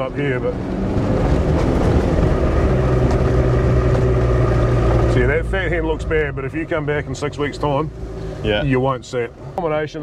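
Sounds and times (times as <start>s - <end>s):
vehicle engine hum while driving: 0.0s - 10.0s.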